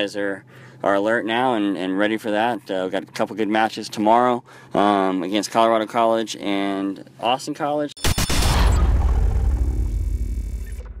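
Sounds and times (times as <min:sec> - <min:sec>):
low rumbling impact: 0:08.3 - 0:11.0.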